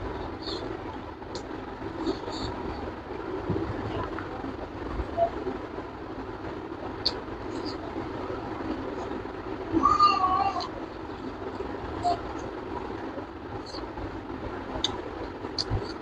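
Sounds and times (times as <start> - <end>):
steady background noise: 0.0 - 16.0.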